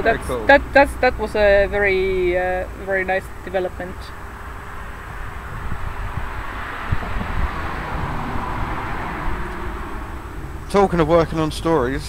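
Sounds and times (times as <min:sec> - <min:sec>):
vehicle passing: 0:00.0 - 0:12.0.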